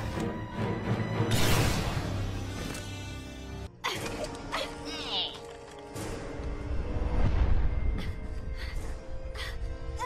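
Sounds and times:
dramatic film score: 0.0s - 10.0s.

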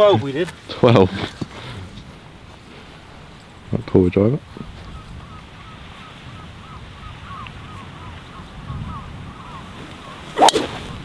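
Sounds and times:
golf driver striking ball: 10.4s - 10.9s.

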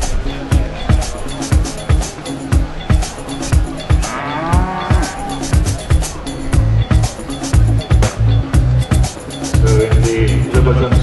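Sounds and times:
music with steady drum beat: 0.0s - 11.0s
cow mooing: 4.0s - 5.5s.

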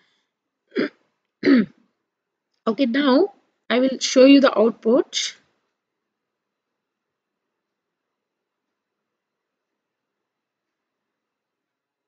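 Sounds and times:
woman coughing: 0.8s - 1.8s.

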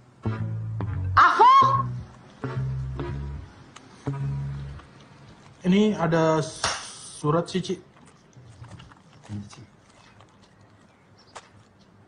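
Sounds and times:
paper letter rustling: 7.6s - 12.0s.

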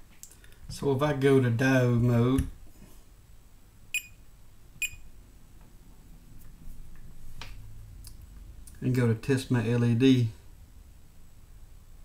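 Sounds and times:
multimeter short beeps: 4.0s - 4.2s, 4.8s - 5.1s.

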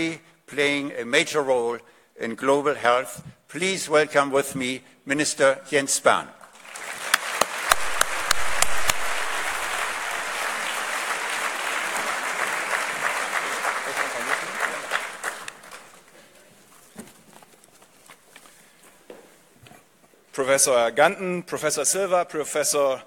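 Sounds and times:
audience applauding: 6.5s - 16.1s.

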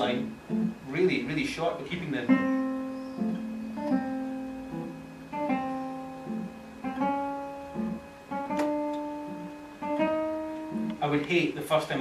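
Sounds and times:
classical guitar playing: 0.0s - 12.0s.

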